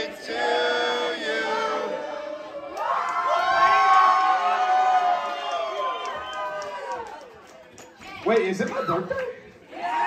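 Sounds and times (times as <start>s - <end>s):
audience cheering and shouting: 2.6s - 7.3s.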